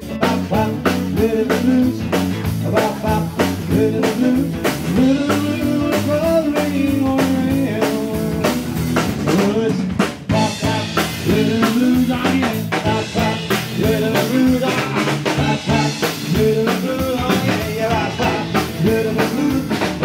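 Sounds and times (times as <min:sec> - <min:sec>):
drum kit beat: 0:00.0 - 0:20.0
electric bass: 0:00.0 - 0:20.0
melodic lead line: 0:10.3 - 0:20.0.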